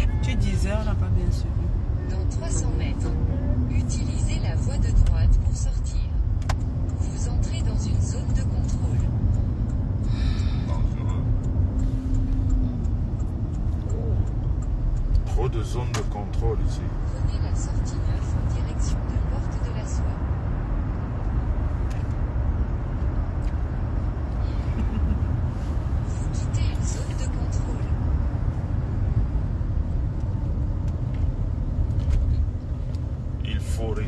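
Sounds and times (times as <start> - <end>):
car cabin road rumble: 0.0 - 34.0.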